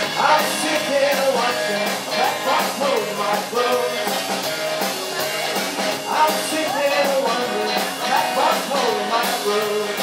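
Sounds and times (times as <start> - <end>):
bass guitar: 0.0 - 10.0
drum kit: 0.0 - 10.0
electric guitar: 0.0 - 10.0.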